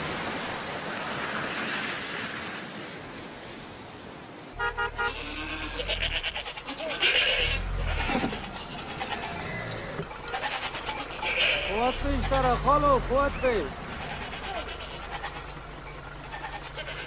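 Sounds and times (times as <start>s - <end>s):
pulsed horn-like tone: 4.6s - 5.8s
animal bleats: 4.6s - 17.0s
low engine rumble: 4.6s - 17.0s.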